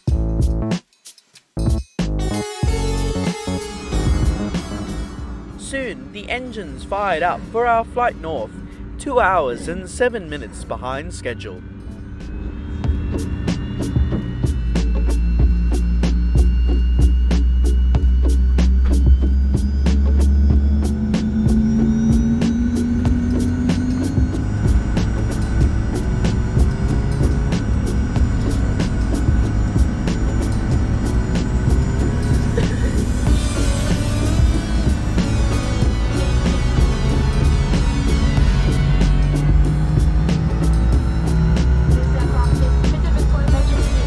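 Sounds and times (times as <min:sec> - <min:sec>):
jet engine spooling up: 0:02.8 - 0:44.0.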